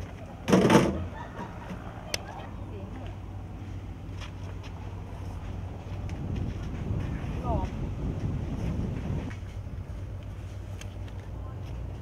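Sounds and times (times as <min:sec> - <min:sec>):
wind buffeting microphone: 0:05.3 - 0:10.8.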